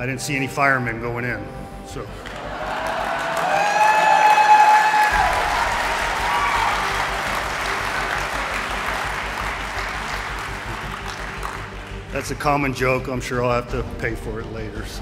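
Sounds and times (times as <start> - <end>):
audience applauding: 2.2 - 12.7.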